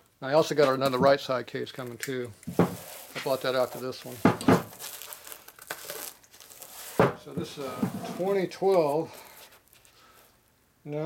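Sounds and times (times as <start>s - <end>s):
plastic wrapping crinkling: 1.7s - 10.3s.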